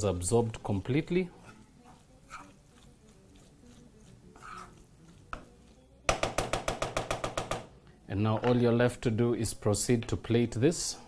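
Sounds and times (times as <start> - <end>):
wooden spoon scraping pot: 0.0 - 5.9.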